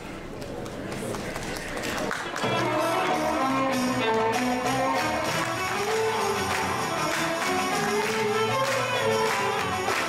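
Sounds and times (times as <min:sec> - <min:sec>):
audience applauding: 0:00.4 - 0:10.0.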